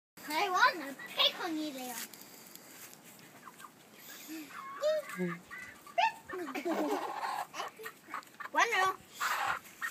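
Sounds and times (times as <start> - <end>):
hens clucking: 0.2 - 1.7, 3.0 - 9.9
toddler calling: 4.2 - 6.4.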